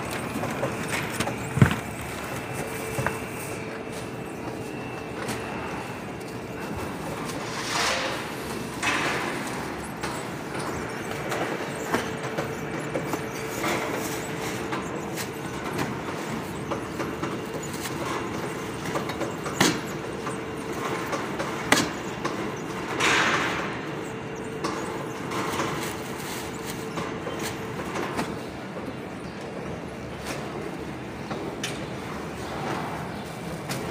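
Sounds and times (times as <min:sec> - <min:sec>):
metal conveyor clacks: 0:00.0 - 0:28.4
steady machine noise: 0:00.0 - 0:31.3.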